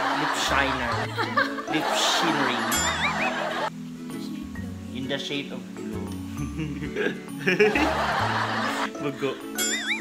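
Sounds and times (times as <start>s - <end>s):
people laughing: 0.0s - 3.7s, 6.6s - 9.3s.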